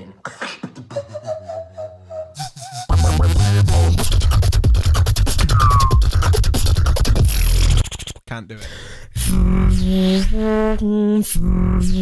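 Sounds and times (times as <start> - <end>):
person beatboxing: 0.1 - 1.4, 2.4 - 8.2
low hum: 9.2 - 12.0.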